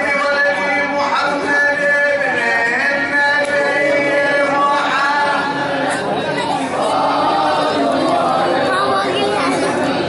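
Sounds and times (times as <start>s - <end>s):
men chanting together: 2.2s - 6.0s, 6.7s - 8.7s.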